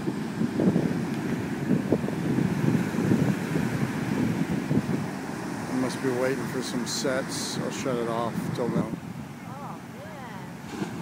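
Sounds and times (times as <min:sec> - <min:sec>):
ocean surf washing up beach: 0:00.0 - 0:11.0
wind buffeting microphone: 0:00.0 - 0:11.0.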